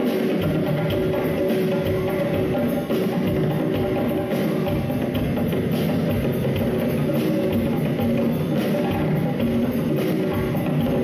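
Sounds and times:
djembes and drum kit groove: 0.0s - 11.0s.

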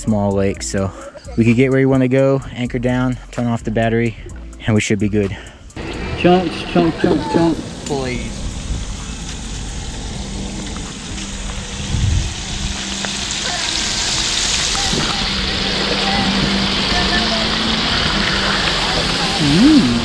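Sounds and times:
fish deep-frying in oil: 7.9s - 19.5s.

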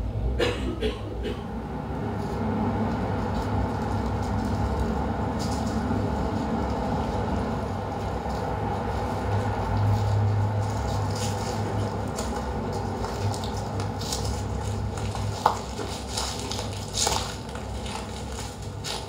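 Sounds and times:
low rumbling drone over speakers: 0.0s - 15.6s.

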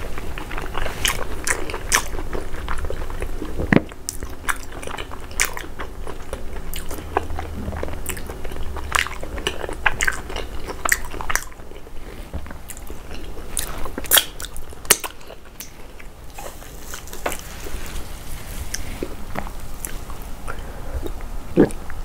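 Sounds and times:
close chewing with wet mouth sounds: 0.0s - 17.9s, 18.5s - 22.0s.

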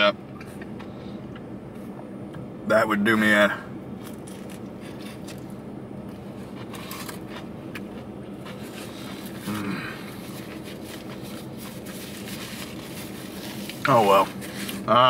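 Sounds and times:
low hum inside car: 0.0s - 15.0s
person chewing: 6.1s - 13.8s
paper wrapper crinkling: 8.6s - 14.8s.

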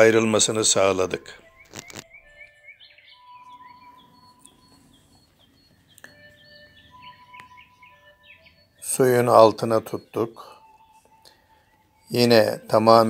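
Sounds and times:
small birds chirping: 0.0s - 13.0s.

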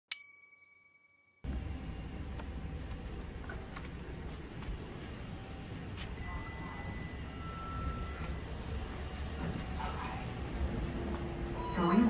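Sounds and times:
bright ding chime: 0.1s - 1.5s.

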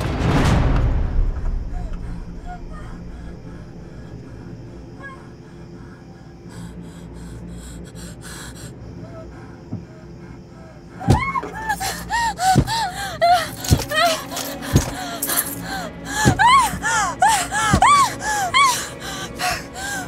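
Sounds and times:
low horror drone: 0.0s - 20.0s
woman breathing frightened: 1.6s - 20.0s
high whimpering cries: 6.6s - 20.0s.

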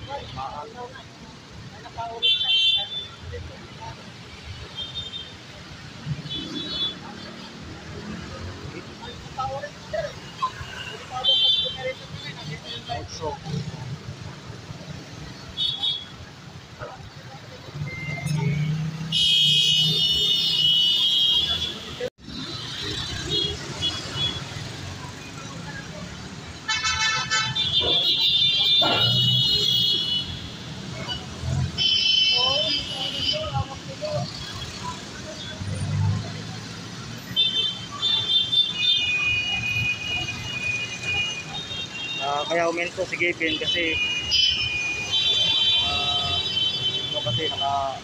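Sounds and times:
street traffic engines: 0.0s - 48.0s
voices: 0.0s - 48.0s
loud high-pitched vehicle tone: 17.7s - 20.5s.

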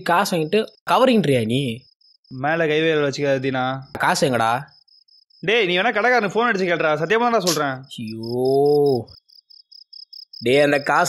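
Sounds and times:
men talking: 0.0s - 1.8s, 2.4s - 4.7s, 5.4s - 9.1s, 10.4s - 11.0s
crickets chirping: 0.0s - 11.0s.

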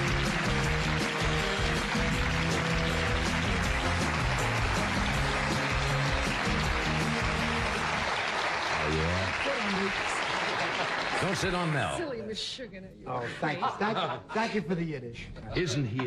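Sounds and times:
band playing: 0.0s - 9.4s
audience applause: 0.0s - 12.0s.

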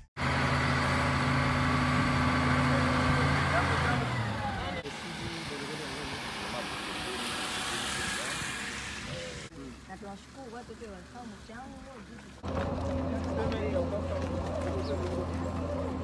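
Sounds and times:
diesel engine running: 0.0s - 16.0s
people's voices: 2.5s - 16.0s.

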